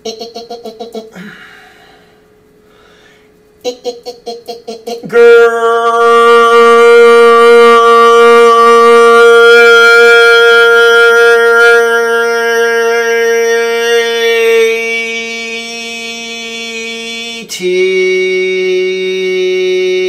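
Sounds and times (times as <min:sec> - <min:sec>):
man singing long held note: 0:03.6 - 0:20.0.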